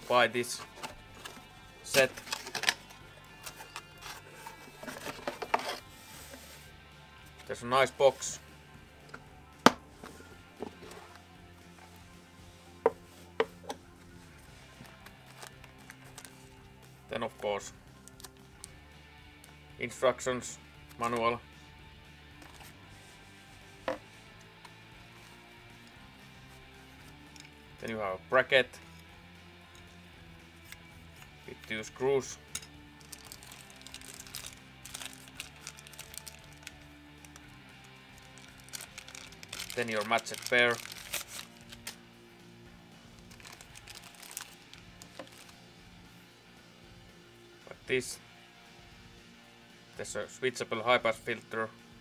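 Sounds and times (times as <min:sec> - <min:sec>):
quiet background music: 0:00.0 - 0:52.0
case latches snapping open: 0:02.0 - 0:03.6
plastic packaging rustling: 0:03.4 - 0:05.9, 0:33.0 - 0:36.8, 0:38.2 - 0:42.0, 0:43.3 - 0:45.5.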